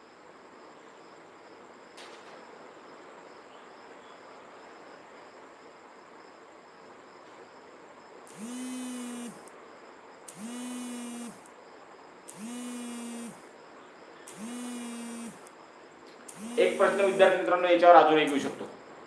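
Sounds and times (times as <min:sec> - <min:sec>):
mobile phone vibrating: 0:08.3 - 0:09.5, 0:10.3 - 0:11.5, 0:12.3 - 0:13.4, 0:14.3 - 0:15.5, 0:16.3 - 0:17.4.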